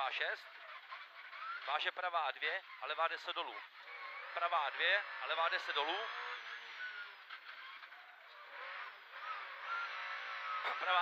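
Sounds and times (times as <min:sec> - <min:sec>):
rally car engine revving: 0:00.0 - 0:11.0
tyre and road noise: 0:00.0 - 0:11.0.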